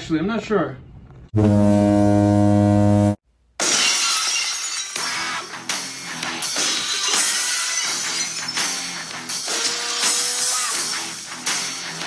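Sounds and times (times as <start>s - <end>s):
low buzzer-like horn: 1.3s - 3.2s
glass shattering crash: 3.6s - 10.4s
rock music with guitar and drums: 5.2s - 6.9s, 7.8s - 12.0s.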